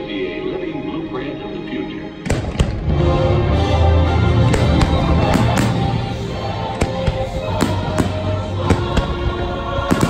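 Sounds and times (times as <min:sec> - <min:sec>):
music over loudspeakers: 0:00.0 - 0:10.0
firework bangs: 0:04.3 - 0:10.0.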